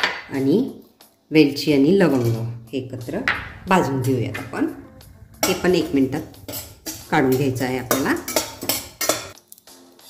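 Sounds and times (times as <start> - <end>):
spatula scraping metal pan: 2.0 - 9.4.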